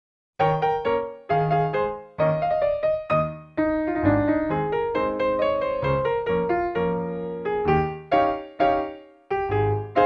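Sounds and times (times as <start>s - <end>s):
piano music: 0.4s - 10.0s.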